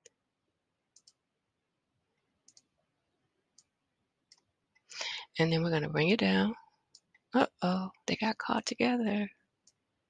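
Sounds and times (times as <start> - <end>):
faint computer mouse clicks: 0.9 - 1.2, 2.4 - 2.7.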